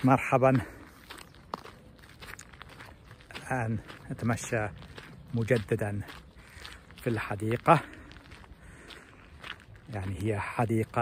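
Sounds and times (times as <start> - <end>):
faint footsteps: 0.0 - 11.0.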